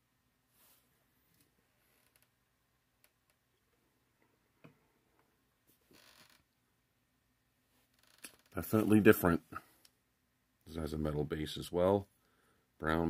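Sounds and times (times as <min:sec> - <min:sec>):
soft rustle: 0:00.5 - 0:02.4, 0:07.6 - 0:09.9.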